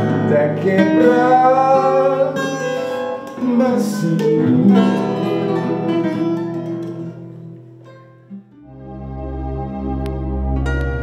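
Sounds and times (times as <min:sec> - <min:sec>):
acoustic guitars final chord ringing: 0:00.0 - 0:08.6
slow ambient music with deep bass: 0:08.7 - 0:11.0.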